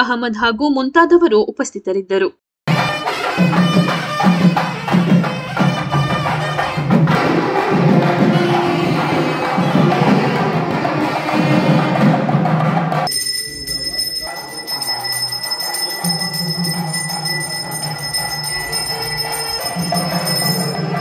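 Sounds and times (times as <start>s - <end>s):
puja bell ringing: 2.7s - 10.7s, 13.0s - 21.0s
temple band drums and clappers: 2.7s - 13.1s.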